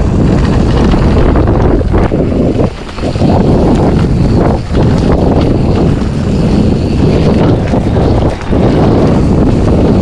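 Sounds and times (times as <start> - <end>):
bike tyres rolling over dirt trail: 0.0 - 10.0
wind buffeting on microphone: 0.0 - 10.0.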